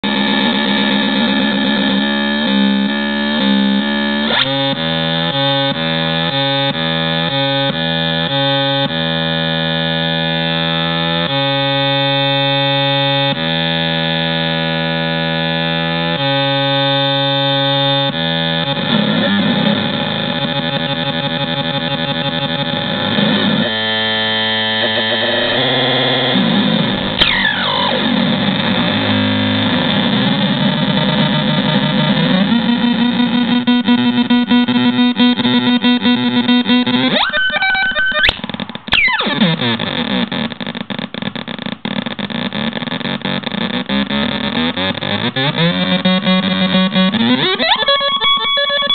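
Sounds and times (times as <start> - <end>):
noisy synthesizer drone: 0.0 - 39.8.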